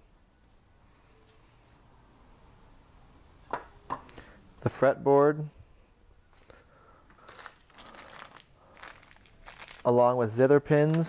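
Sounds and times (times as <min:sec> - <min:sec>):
plastic bag crinkling: 0:07.2 - 0:09.9
metal pins clinking: 0:07.3 - 0:10.0.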